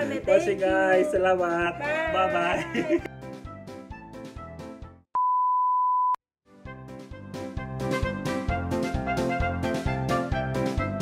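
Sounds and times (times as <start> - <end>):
background music: 0.0 - 5.0, 6.5 - 11.0.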